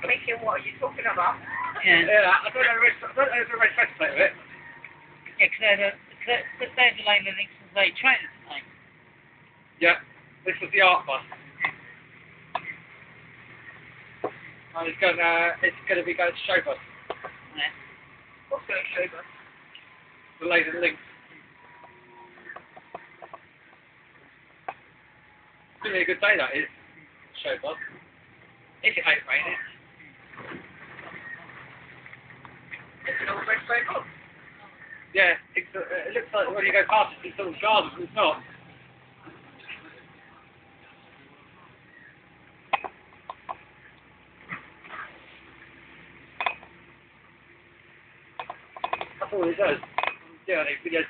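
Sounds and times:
bus running noise: 0.0s - 51.0s.

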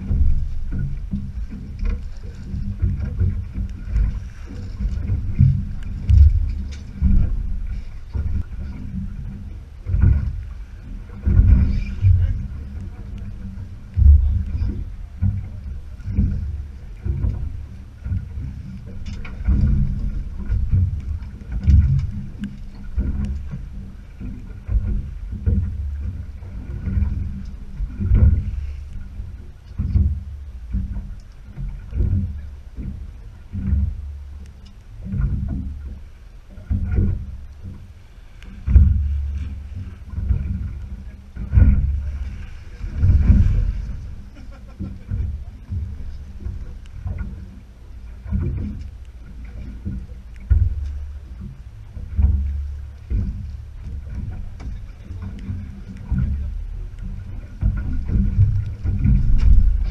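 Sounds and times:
boat hull slapping on water: 0.0s - 59.9s
steady low rumble: 0.0s - 59.9s.

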